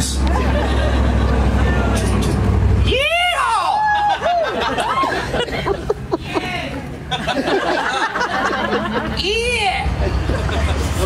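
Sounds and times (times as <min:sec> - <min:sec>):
motor vehicle rumbling: 0:00.0 - 0:11.0.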